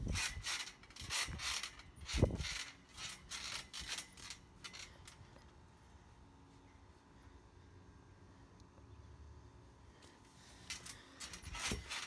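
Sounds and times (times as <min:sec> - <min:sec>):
trampoline springs squeaking: 0:00.0 - 0:05.3, 0:10.5 - 0:12.0.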